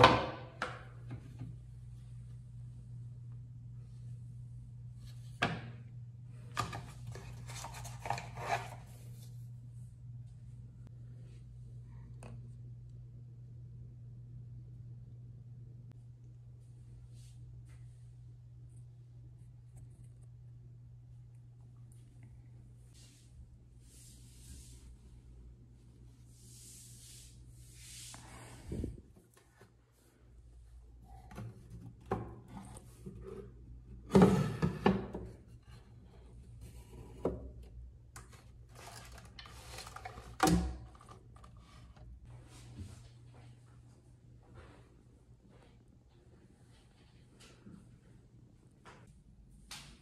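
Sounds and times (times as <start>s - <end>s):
low room hum: 0.0s - 50.0s
rummaging handling noise: 6.5s - 9.0s, 38.2s - 42.2s.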